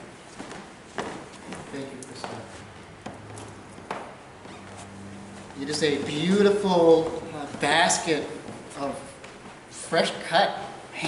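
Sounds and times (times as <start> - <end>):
man speaking: 5.6 - 9.2, 9.8 - 11.0.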